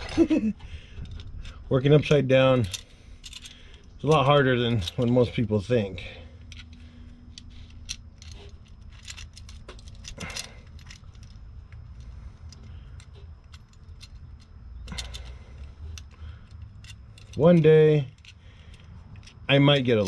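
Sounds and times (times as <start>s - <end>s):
low background hum: 0.0s - 20.0s
metal clamp clinking: 1.0s - 20.0s.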